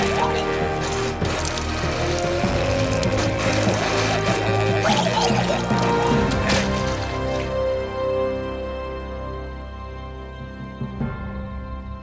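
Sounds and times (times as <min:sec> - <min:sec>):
vomit gushing and splashing: 0:00.0 - 0:08.0
background music with held notes: 0:00.0 - 0:12.0.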